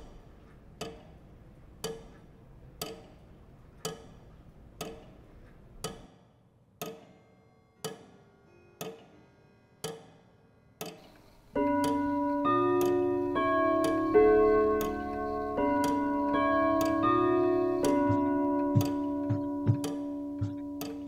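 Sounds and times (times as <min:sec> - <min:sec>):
clock ticking: 0:00.8 - 0:03.2, 0:03.8 - 0:05.2, 0:05.8 - 0:06.1, 0:11.6 - 0:21.0
sustained keyboard chords: 0:11.6 - 0:21.0.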